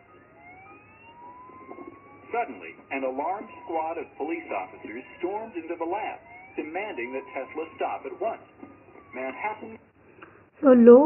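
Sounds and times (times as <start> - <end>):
faint siren-like whine: 0.0 - 10.6.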